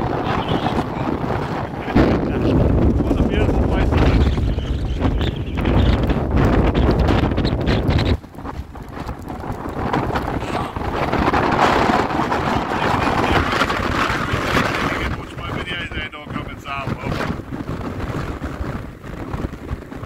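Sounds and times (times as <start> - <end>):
gusty wind: 0.0 - 20.0
wind buffeting microphone: 0.0 - 20.0.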